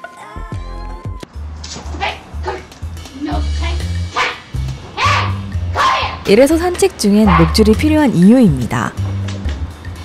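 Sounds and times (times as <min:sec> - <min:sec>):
background music with steady beat: 0:00.0 - 0:10.0
dog barking: 0:04.1 - 0:04.4, 0:05.0 - 0:06.2, 0:07.2 - 0:07.6.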